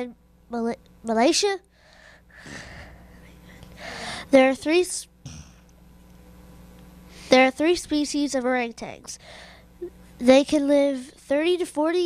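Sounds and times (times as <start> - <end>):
child drawing a breath: 1.7 - 3.1, 3.7 - 4.3, 9.2 - 9.7.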